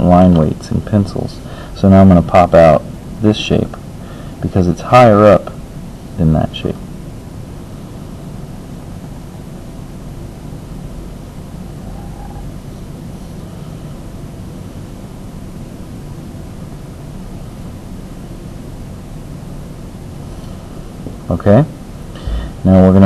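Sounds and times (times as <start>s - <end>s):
steady low rumble: 20.8s - 23.0s.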